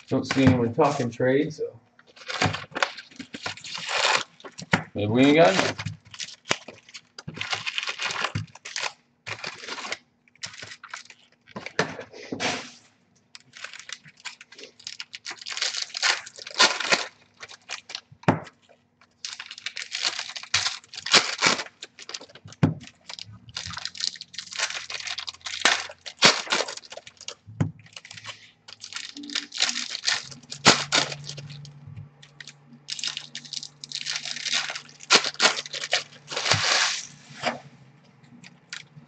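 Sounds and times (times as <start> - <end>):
wrappers tearing and crinkling: 0.0 - 1.2, 2.1 - 11.8, 13.4 - 37.6, 38.3 - 39.0.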